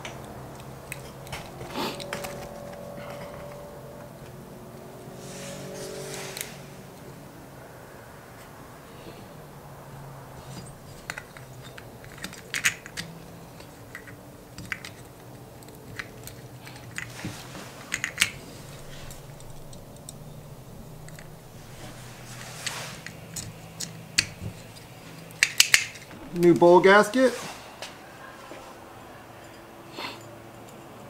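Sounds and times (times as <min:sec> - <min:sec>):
small metal parts clicking: 0:00.0 - 0:03.7, 0:10.4 - 0:26.6
faint low hum: 0:00.0 - 0:31.0.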